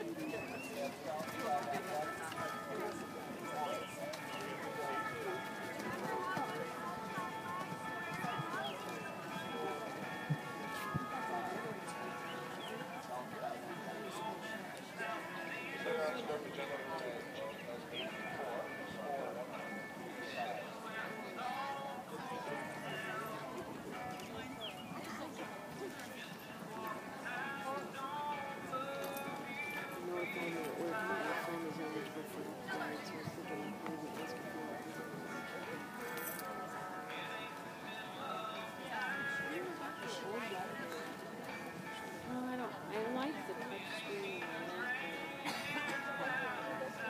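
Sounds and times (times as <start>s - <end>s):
chatter of voices: 0.0s - 47.0s
horse hoofbeats on soft ground: 0.2s - 11.6s.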